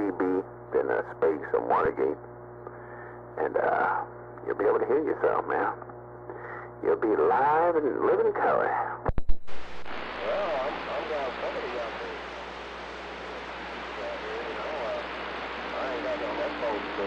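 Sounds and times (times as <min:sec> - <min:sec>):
faint voice over radio: 0:00.0 - 0:02.2, 0:03.4 - 0:05.8, 0:06.4 - 0:09.0, 0:10.2 - 0:17.0
radio static hiss: 0:00.0 - 0:17.0.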